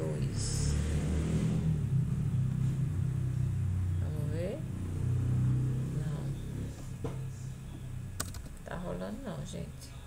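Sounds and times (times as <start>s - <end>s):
low steady rumble: 0.0s - 10.0s
keyboard keystroke clicks: 8.2s - 8.6s.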